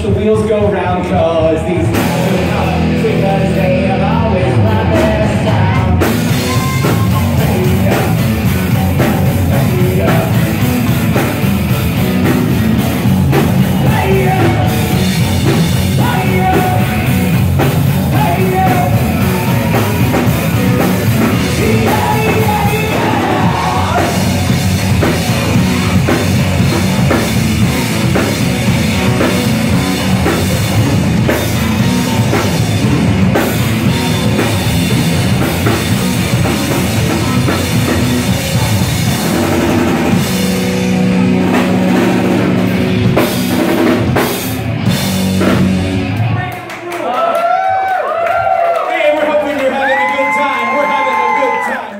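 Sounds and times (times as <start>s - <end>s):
drum kit: 0.0s - 46.9s
bass guitar: 0.0s - 48.7s
electric guitar: 0.0s - 48.7s
crowd cheering and shouting: 0.0s - 51.9s.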